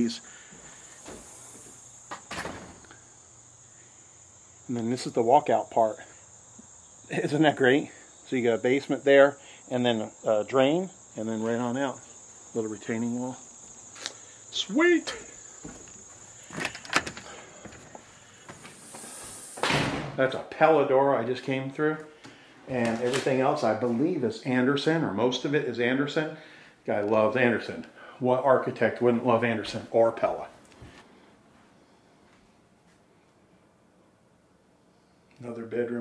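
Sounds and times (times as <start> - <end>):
crickets chirring: 0.0 - 32.1
glass door swishing shut: 2.1 - 2.8, 18.8 - 20.2.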